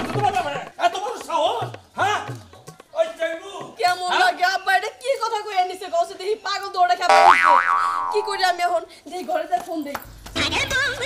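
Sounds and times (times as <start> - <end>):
cartoon boing sound effect: 7.1 - 8.6.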